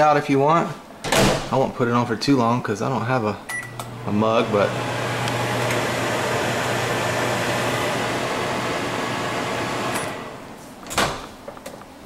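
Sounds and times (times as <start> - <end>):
microwave oven hum and fan: 3.5 - 10.6.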